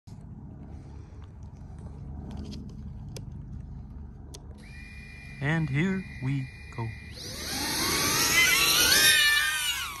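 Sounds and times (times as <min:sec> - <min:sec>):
drone motors whining: 0:04.4 - 0:10.0.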